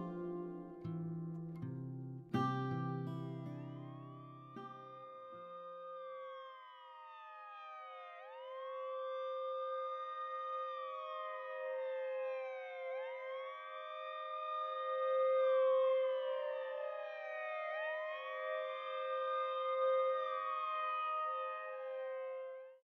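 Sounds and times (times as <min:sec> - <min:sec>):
siren wailing: 0:02.4 - 0:22.8.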